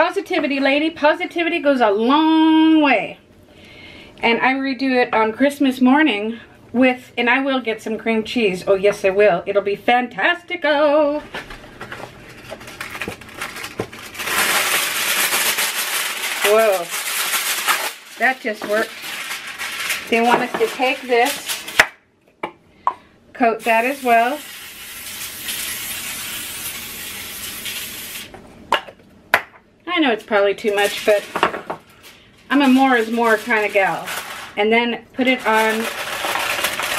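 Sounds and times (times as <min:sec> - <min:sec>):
aluminum foil crinkling: 0:11.4 - 0:21.9, 0:30.2 - 0:36.9
aerosol spray hissing: 0:23.7 - 0:28.3.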